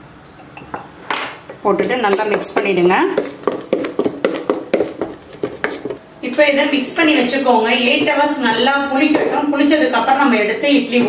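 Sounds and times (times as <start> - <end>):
woman speaking: 1.6 - 3.3, 6.2 - 11.0.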